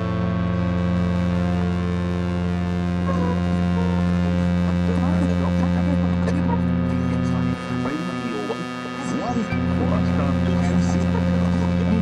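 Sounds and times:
loud low droning hum: 0.0s - 12.0s.

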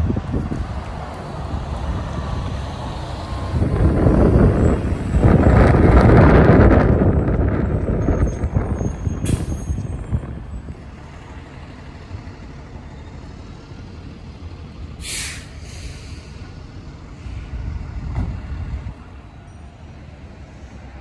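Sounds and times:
trolley bus pulling away: 0.0s - 21.0s
air hiss: 15.0s - 16.4s.

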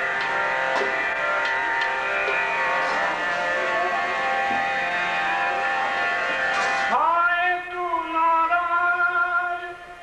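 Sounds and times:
harmonium sustained notes: 0.0s - 10.0s
devotional singing: 6.8s - 10.0s.

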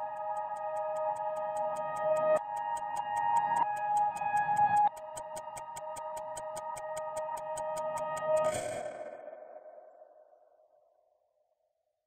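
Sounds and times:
rapid clock ticking: 0.0s - 8.8s.

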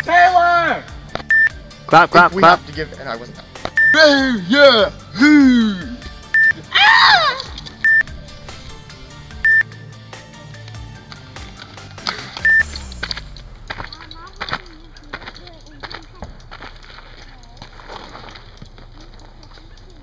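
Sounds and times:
short electronic bleeps: 1.3s - 1.6s, 3.8s - 4.0s, 6.4s - 6.6s, 7.8s - 8.1s, 9.4s - 9.6s, 12.4s - 12.9s
person shouting: 4.0s - 6.0s, 6.7s - 7.5s.

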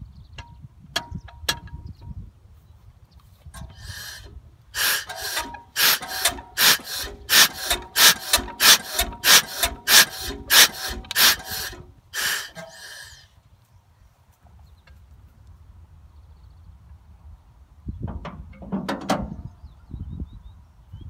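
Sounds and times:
hand crank squealing: 3.6s - 13.2s.

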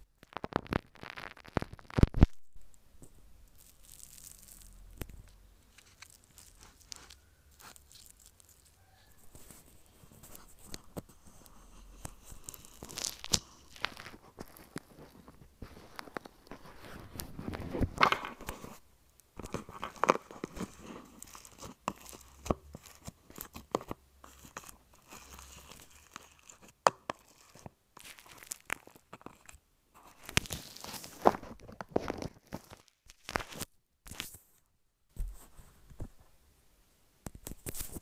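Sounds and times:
slime crackling and squelching: 0.0s - 2.4s, 3.0s - 34.4s.

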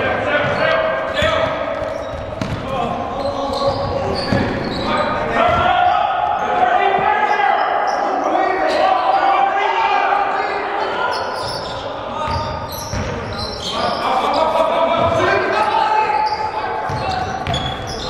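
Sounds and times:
echoing voices: 0.0s - 18.0s
basketball bouncing on hardwood floor: 1.8s - 2.6s.

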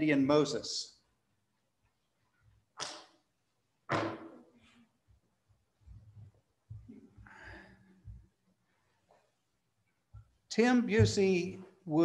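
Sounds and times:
short breaths close to microphone: 7.2s - 8.2s.

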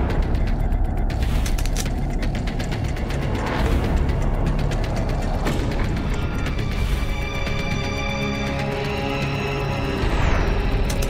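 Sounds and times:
rapid mechanical ticking: 0.0s - 6.9s.

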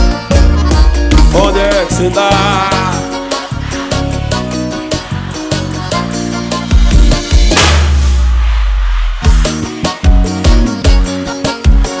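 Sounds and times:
heavy kick drum beat: 0.0s - 1.9s, 6.7s - 12.0s
band playing sustained chords: 0.0s - 12.0s.

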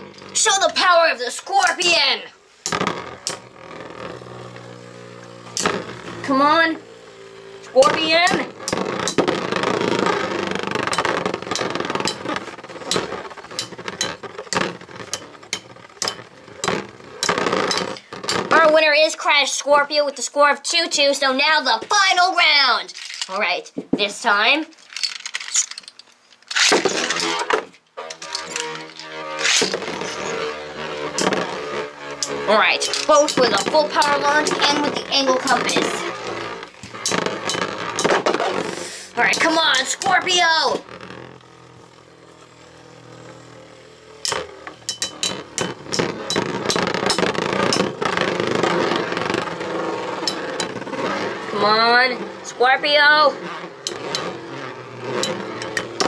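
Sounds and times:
spinning tops clattering: 0.0s - 18.6s, 22.9s - 23.4s, 24.7s - 56.0s
spinning tops whirring: 0.0s - 56.0s
spinning tops clicking together: 22.9s - 23.4s, 24.7s - 38.9s.

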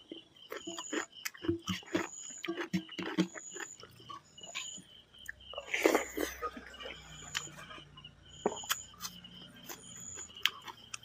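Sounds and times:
wet chewing and lip-smacking: 0.0s - 11.0s.

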